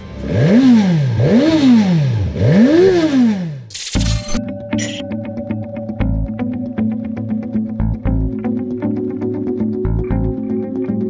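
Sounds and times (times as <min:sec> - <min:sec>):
motorcycle engine revving: 0:00.0 - 0:03.8.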